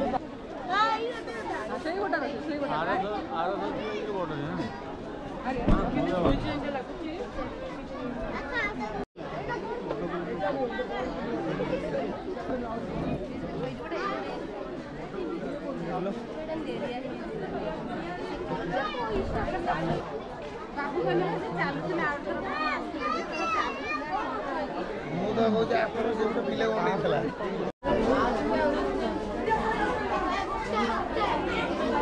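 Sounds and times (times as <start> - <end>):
chatter of voices: 0.0 - 32.0.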